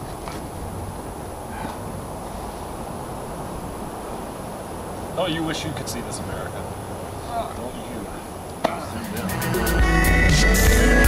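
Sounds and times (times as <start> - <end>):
wind rumble on microphone: 0.0 - 9.0.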